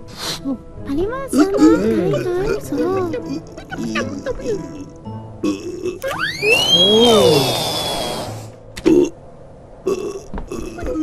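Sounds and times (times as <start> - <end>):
low grunt like a burp: 5.4 - 6.0
whistle sliding upward: 6.0 - 8.5.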